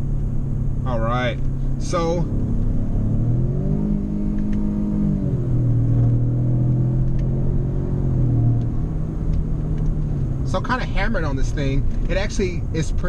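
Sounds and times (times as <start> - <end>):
car engine accelerating hard: 0.0 - 13.0.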